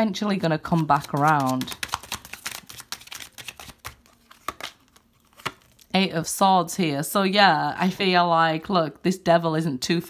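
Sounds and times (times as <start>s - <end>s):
cards being shuffled: 0.7s - 5.9s.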